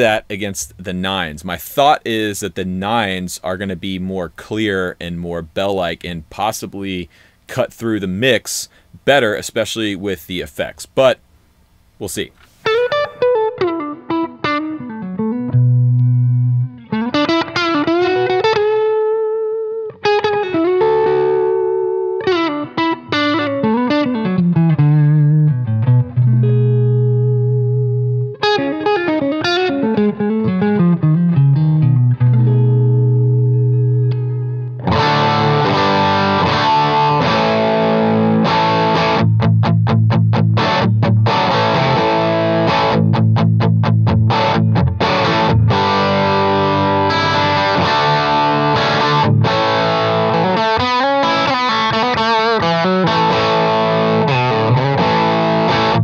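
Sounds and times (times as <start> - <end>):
distorted electric guitar: 12.4 - 56.0.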